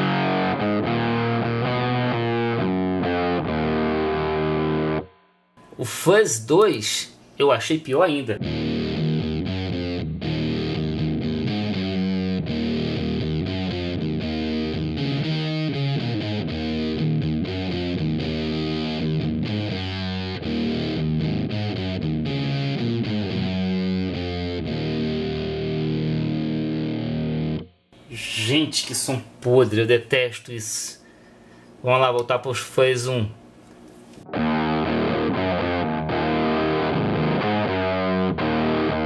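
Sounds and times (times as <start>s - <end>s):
distorted electric guitar chords: 0.0s - 5.7s, 8.4s - 27.8s, 34.2s - 39.0s.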